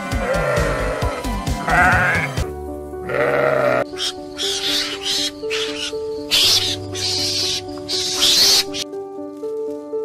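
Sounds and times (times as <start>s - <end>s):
sheep bleating: 0.0s - 3.9s
background music with held notes: 0.0s - 10.0s.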